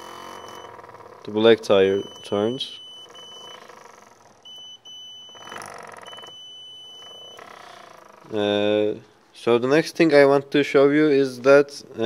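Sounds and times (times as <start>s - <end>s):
buzzer beeping: 0.0s - 8.9s.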